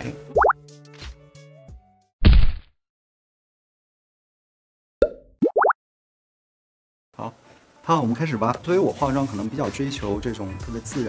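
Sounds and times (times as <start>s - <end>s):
short rising bloops: 5.0s - 5.8s.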